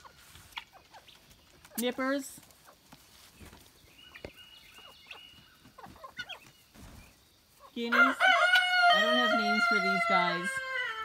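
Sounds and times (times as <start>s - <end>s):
hens and guinea fowl calling: 0.0s - 11.0s.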